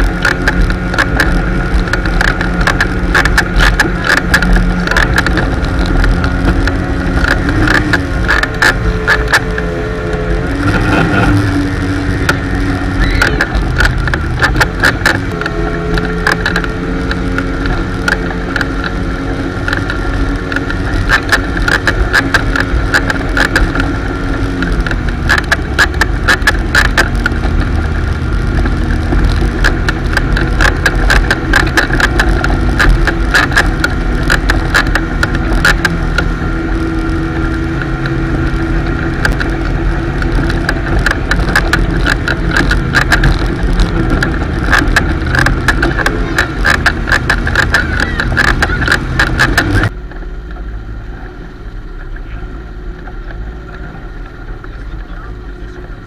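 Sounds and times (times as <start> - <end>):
hull knocks and buffets: 0.0 - 56.0
motorboat engine drone: 0.0 - 56.0.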